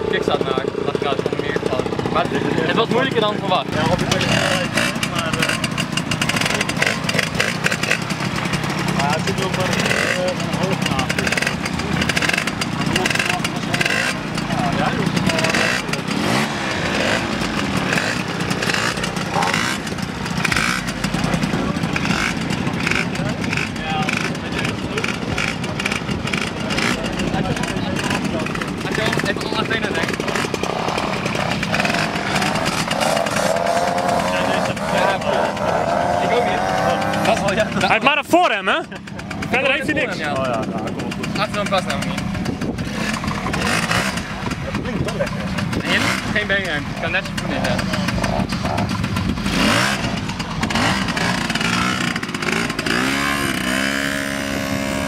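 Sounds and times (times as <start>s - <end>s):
people talking: 0.0s - 7.5s, 8.8s - 17.2s, 21.0s - 30.4s, 31.0s - 42.4s, 43.1s - 49.0s
moped engine running: 0.0s - 55.0s.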